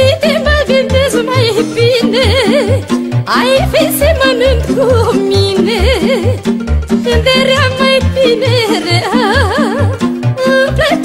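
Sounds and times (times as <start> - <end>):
folk music with ornamented melody: 0.0 - 11.0.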